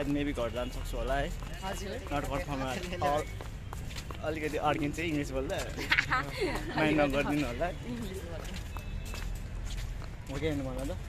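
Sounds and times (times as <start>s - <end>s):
footsteps on paved path: 0.0s - 11.0s.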